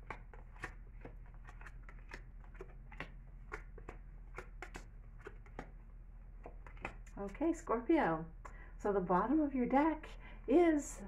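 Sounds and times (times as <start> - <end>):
cards clicking on a table: 0.0 - 5.8, 6.4 - 7.2.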